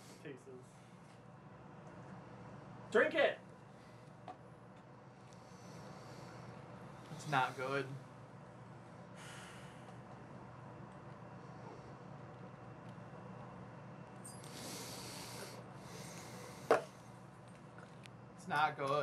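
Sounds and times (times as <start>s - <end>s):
low room hum: 0.0s - 19.0s
person breathing through nose: 5.3s - 7.8s, 9.2s - 10.0s, 14.3s - 17.0s.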